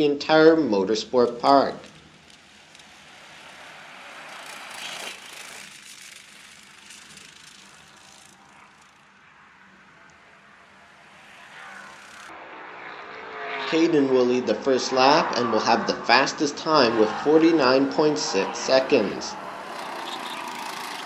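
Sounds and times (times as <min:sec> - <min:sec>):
go-kart engines passing: 0:00.0 - 0:21.0.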